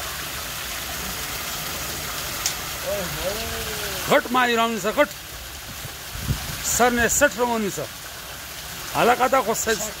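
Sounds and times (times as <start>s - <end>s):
water rushing through a channel: 0.0s - 10.0s.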